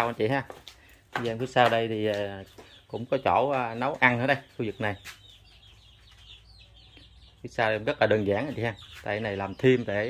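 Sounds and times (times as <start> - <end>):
chickens peeping faintly: 0.0 - 10.0.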